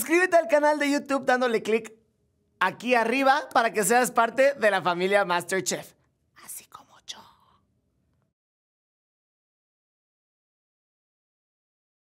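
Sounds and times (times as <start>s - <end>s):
person whispering: 6.3s - 7.7s.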